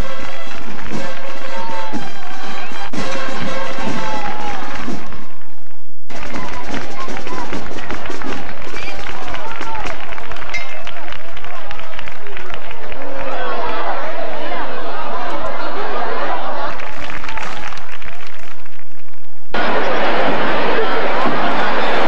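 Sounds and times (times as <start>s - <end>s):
crowd hubbub: 0.0s - 5.5s, 6.1s - 22.0s
music: 0.0s - 12.4s.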